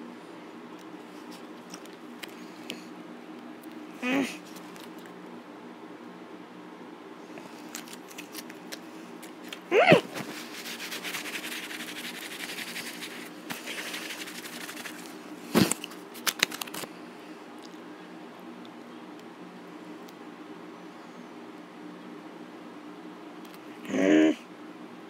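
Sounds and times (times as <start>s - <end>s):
steady low hum: 0.0s - 25.0s
short vocal sound: 9.7s - 10.1s.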